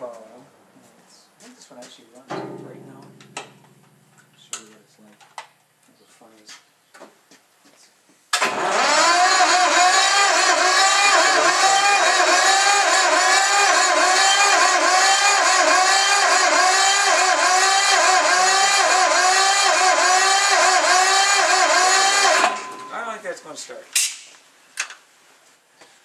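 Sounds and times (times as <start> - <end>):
diesel engine starter cranking: 8.4 - 23.1.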